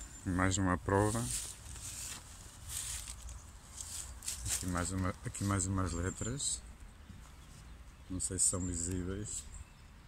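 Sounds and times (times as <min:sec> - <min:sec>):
footsteps on dry leaves: 0:00.9 - 0:06.0.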